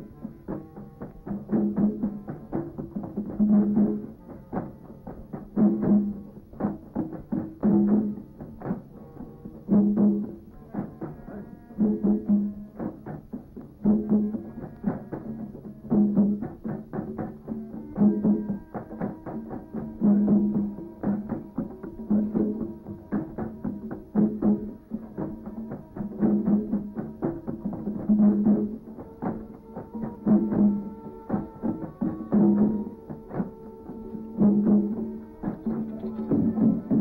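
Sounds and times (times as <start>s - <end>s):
drum beating steady rhythm: 0.0s - 37.0s.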